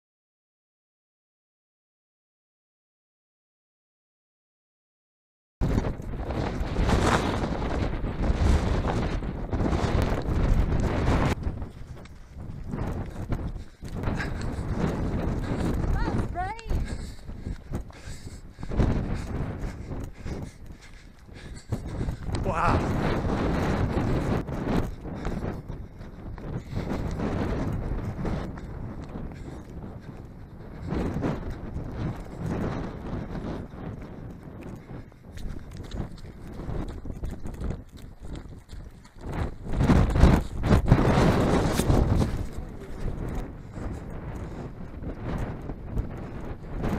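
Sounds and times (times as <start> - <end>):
running footsteps on flagstones: 5.6 - 46.9
wind rumbling on microphone: 5.6 - 46.9.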